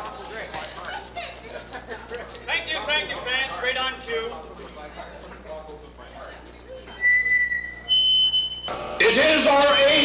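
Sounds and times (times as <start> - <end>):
band's dense noise: 6.8 - 10.0
high whistle-like tone: 6.9 - 8.7.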